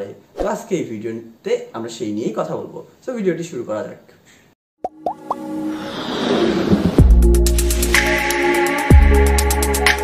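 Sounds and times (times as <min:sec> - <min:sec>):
intro music: 0:04.9 - 0:10.0
whoosh: 0:05.4 - 0:08.0.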